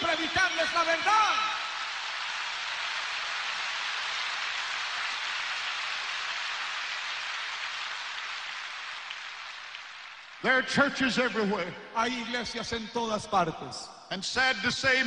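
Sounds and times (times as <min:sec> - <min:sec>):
large audience applauding: 0:00.0 - 0:11.4.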